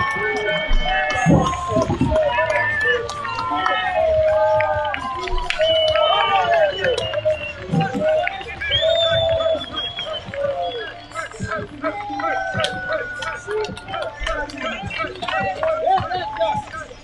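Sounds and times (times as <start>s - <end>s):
people shouting and cheering: 0.0s - 17.0s.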